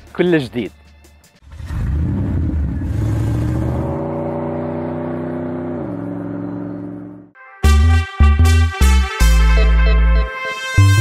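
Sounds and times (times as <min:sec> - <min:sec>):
car engine revving: 0:01.5 - 0:07.3.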